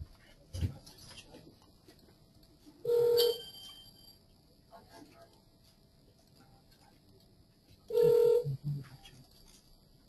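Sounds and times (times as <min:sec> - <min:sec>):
faint high ringing tone: 0:02.8 - 0:04.4, 0:07.9 - 0:10.0.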